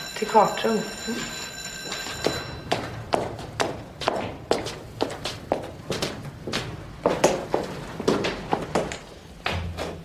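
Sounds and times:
high heels on stone stairs: 1.8 - 10.0.

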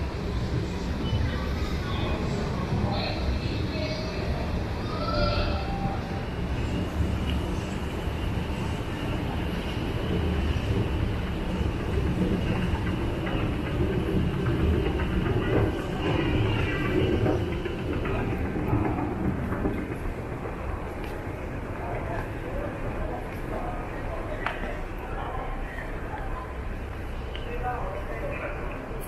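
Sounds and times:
train rumbling through station: 0.0 - 29.0.

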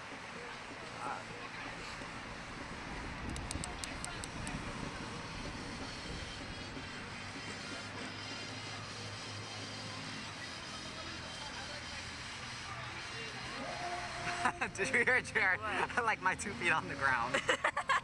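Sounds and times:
outdoor background noise: 0.0 - 18.0.

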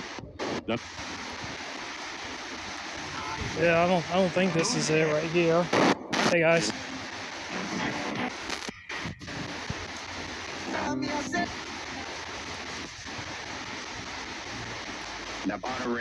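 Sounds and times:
radio static hiss: 0.0 - 16.0.

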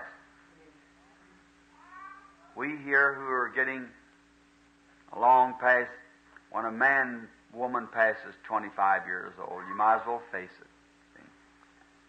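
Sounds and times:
steady low hum: 0.0 - 12.0
man's voice: 2.6 - 3.9, 5.2 - 6.0, 6.6 - 10.6.

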